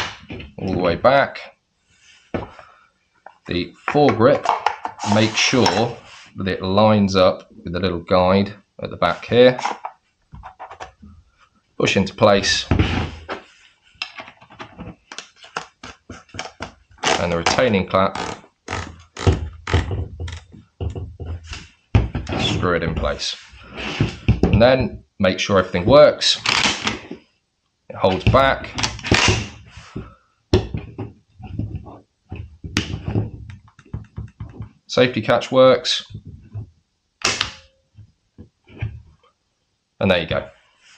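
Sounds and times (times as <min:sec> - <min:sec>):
rubs and knocks of parts: 0:09.5 - 0:11.1, 0:12.6 - 0:24.6, 0:28.2 - 0:34.9, 0:36.0 - 0:39.2.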